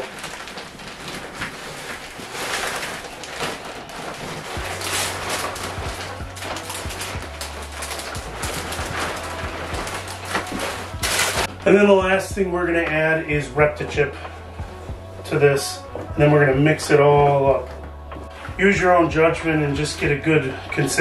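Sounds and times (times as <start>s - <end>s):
low bass hum: 3.7s - 21.0s.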